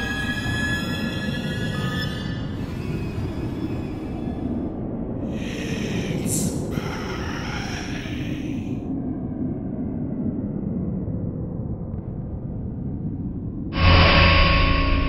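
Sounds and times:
low rumbling drone: 0.0s - 15.0s
breathy hissing whoosh: 2.5s - 8.9s.

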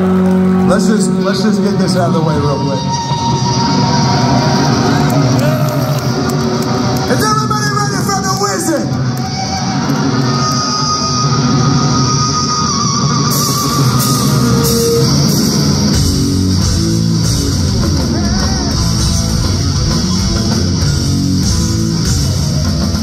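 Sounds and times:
heavy rock band playing: 0.0s - 23.0s.

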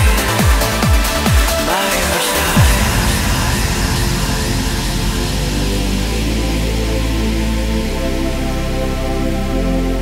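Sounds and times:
steady low bass: 0.0s - 10.0s
trance music noise sweep: 0.0s - 10.0s.

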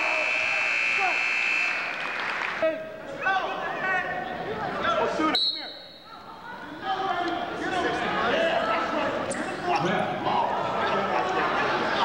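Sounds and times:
buzzer long electronic tone: 0.0s - 1.9s.

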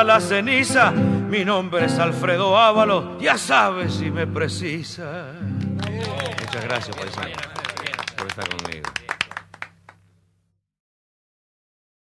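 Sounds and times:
audience handclapping: 5.6s - 10.0s.

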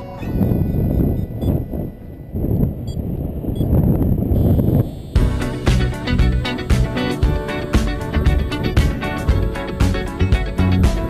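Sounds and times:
wind buffeting microphone: 0.0s - 5.1s.

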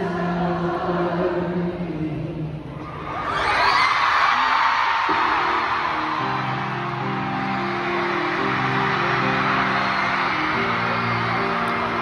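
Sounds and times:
crowd noise: 2.6s - 12.0s
live band playing chords: 5.1s - 12.0s.

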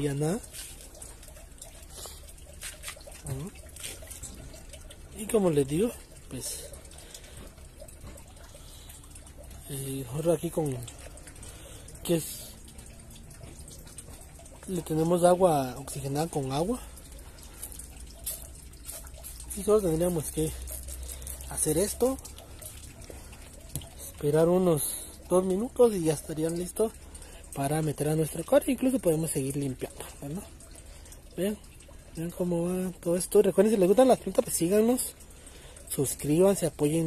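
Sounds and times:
plants rustling and crackling: 0.0s - 5.9s.

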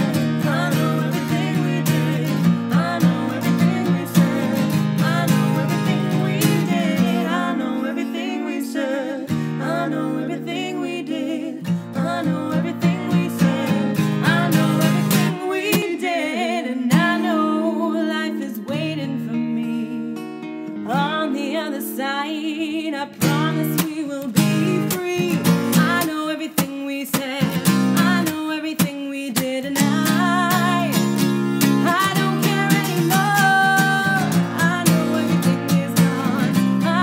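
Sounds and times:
person singing: 0.0s - 20.2s, 20.8s - 37.0s
strummed acoustic guitar: 0.0s - 37.0s.

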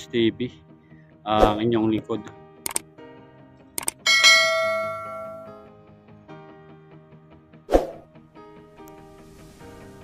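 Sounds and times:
faint background music: 0.0s - 10.0s
quick double click: 2.6s - 2.8s, 3.8s - 4.0s
notification bell ding: 4.1s - 5.7s.

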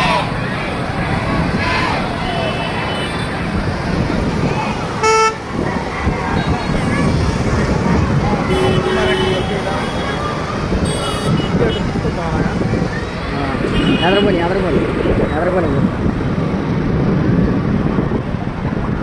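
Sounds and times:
voices: 0.0s - 16.0s
traffic: 0.0s - 19.0s
faint horn-like tone: 5.0s - 5.4s
vehicle horn toot: 5.0s - 5.4s, 8.5s - 10.2s, 10.8s - 11.8s.

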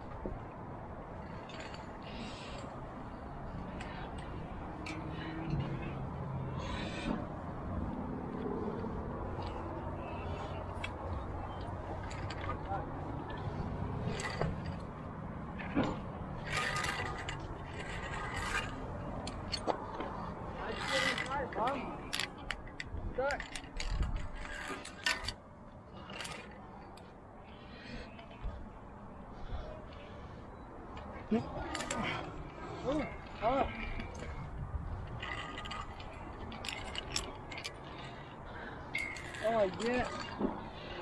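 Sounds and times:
carabiners clinking on steel cable: 1.0s - 28.7s, 30.6s - 41.0s.

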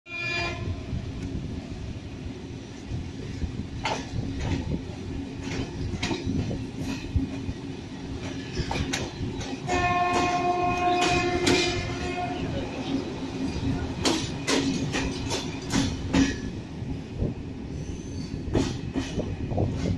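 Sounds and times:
train coaches rumbling past: 0.1s - 19.9s
wheels clicking over rail joints: 3.8s - 16.6s.

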